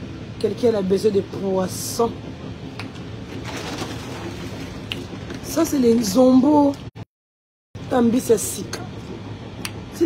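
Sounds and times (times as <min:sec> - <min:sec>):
train carriage rumble: 0:00.0 - 0:06.9, 0:07.8 - 0:10.0.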